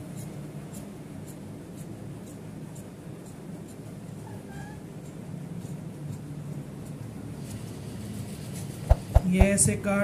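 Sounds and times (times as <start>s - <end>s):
shears snipping fabric: 0.0s - 9.7s
steady low hum: 0.0s - 10.0s.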